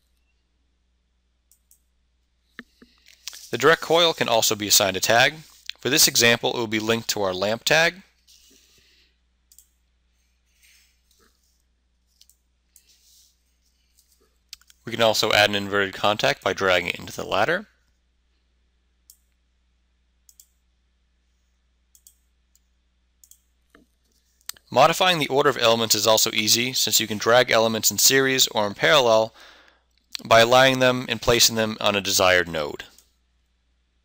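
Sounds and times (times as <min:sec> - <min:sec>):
computer mouse click: 0:09.5 - 0:09.8, 0:20.3 - 0:20.6, 0:21.9 - 0:22.2
computer mouse clicks: 0:09.5 - 0:09.8, 0:20.3 - 0:20.6, 0:21.9 - 0:23.9.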